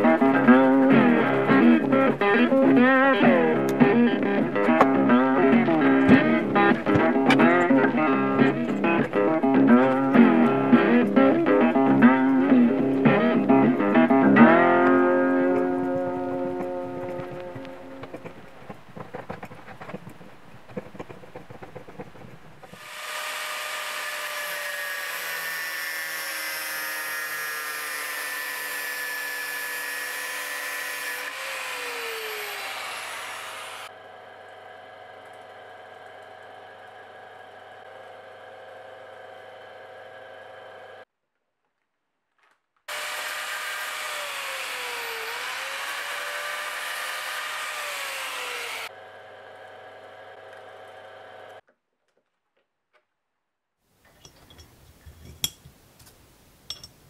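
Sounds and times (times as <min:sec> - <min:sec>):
lathe motor whine: 0:22.6 - 0:41.0, 0:42.9 - 0:51.6.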